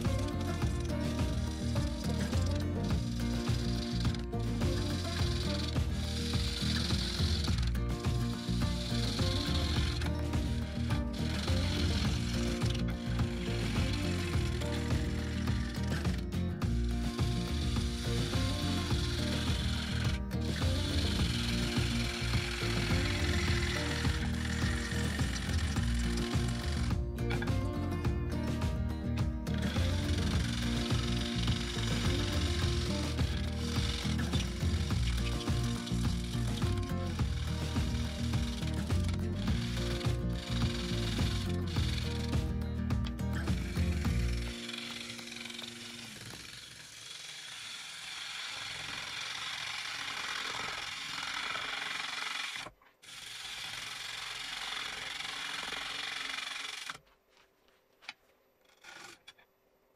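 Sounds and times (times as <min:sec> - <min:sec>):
bowl gouge cutting wood on lathe: 0:00.0 - 0:57.0.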